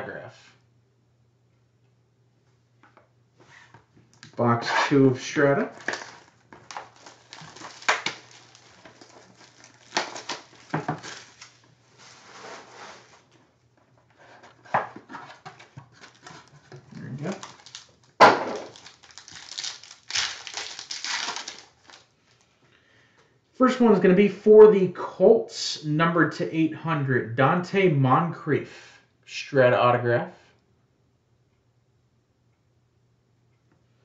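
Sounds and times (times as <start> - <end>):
foil pack crinkling: 5.7 - 13.4, 14.9 - 22.5.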